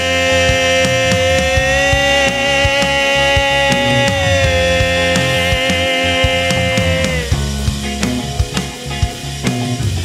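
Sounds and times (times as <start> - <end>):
sustained electric guitar note: 0.0 - 9.3
bass guitar: 0.0 - 10.0
drum beat: 0.0 - 10.0.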